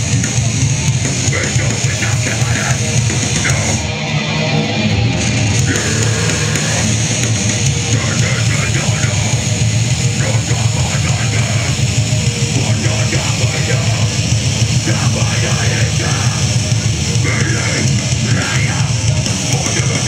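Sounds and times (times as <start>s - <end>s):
distorted guitars: 0.0s - 20.0s
drums: 0.0s - 20.0s
person singing: 1.3s - 3.9s, 5.6s - 20.0s.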